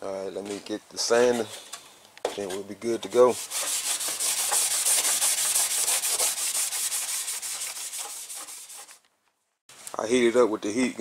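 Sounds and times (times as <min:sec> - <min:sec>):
scouring pad scuffing steel panel: 0:03.4 - 0:09.0.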